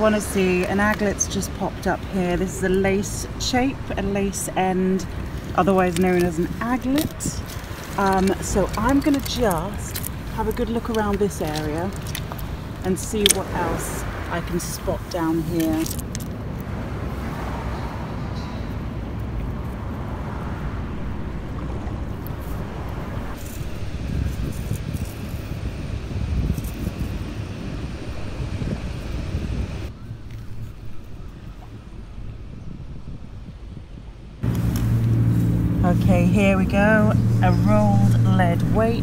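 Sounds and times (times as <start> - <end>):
distant traffic: 0.0 - 39.0
wind on microphone: 0.0 - 39.0.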